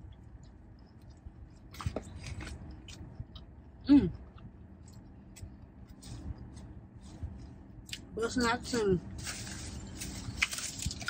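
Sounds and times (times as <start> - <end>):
person chewing food: 0.0 - 8.1.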